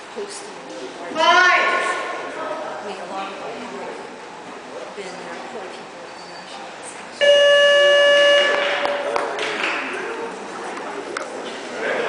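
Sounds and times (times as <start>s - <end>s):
electronic buzzer tone: 7.2s - 9.0s.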